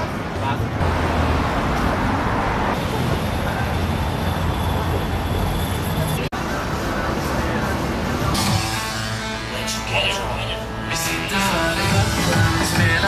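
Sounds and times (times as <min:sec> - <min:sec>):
city street traffic: 0:00.0 - 0:13.0.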